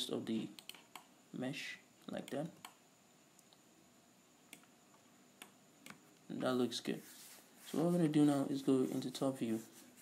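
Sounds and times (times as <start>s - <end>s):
computer mouse clicks: 0.4s - 1.1s, 2.2s - 3.6s, 4.5s - 6.0s.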